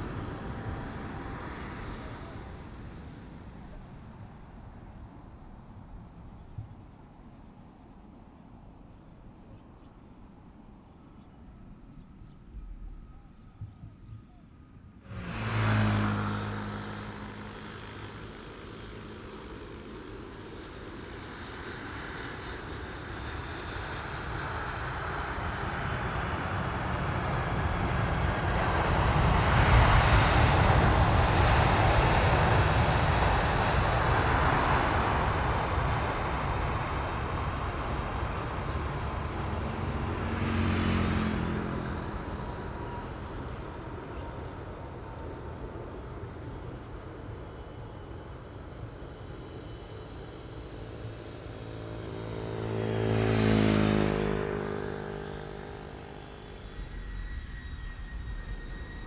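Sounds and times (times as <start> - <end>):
jet engines roaring: 0.0 - 4.8, 15.1 - 59.0.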